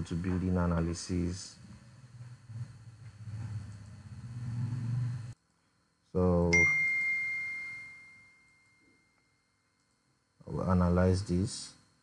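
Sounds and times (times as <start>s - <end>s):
bell-like ding: 6.5s - 9.5s.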